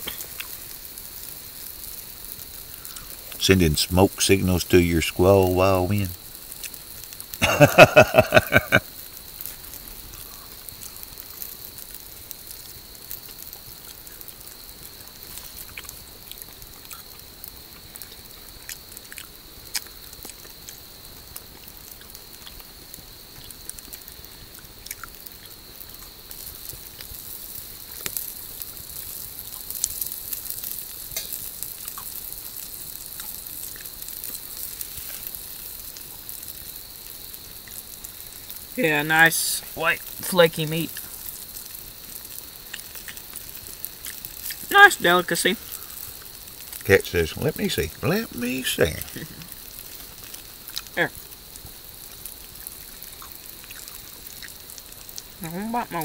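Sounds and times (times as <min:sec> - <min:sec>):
cooking fire sizzling and crackling: 0:00.0 - 0:56.0.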